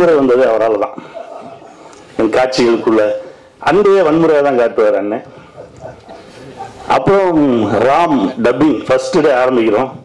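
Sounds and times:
man chuckling: 1.0s - 2.0s.

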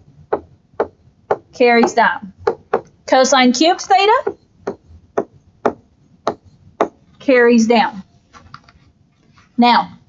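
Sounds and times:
stylus tapping on screen: 0.3s - 3.0s, 4.1s - 7.0s.

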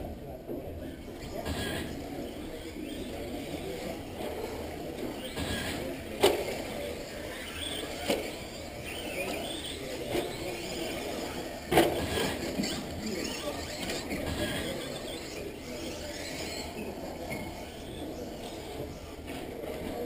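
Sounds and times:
rc car motor whining: 0.8s - 20.0s.

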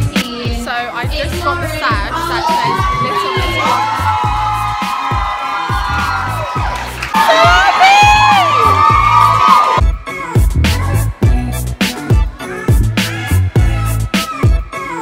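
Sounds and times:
pop music with bass beat: 0.0s - 15.0s
young women cheering and whooping: 2.1s - 9.8s.

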